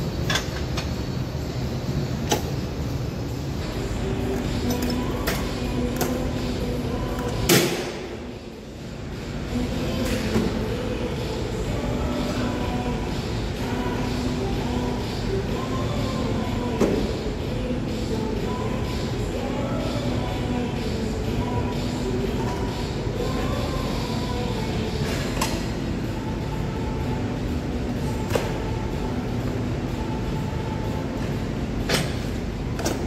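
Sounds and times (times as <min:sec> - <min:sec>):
faint hum: 0:00.0 - 0:33.0
low room rumble: 0:00.0 - 0:33.0.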